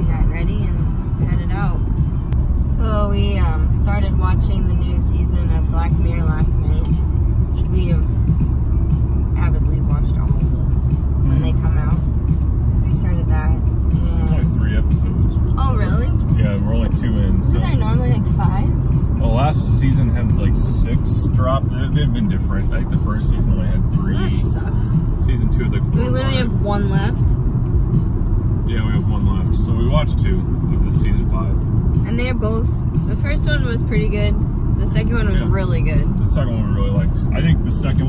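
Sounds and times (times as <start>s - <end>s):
car cabin road rumble: 0.0s - 38.0s.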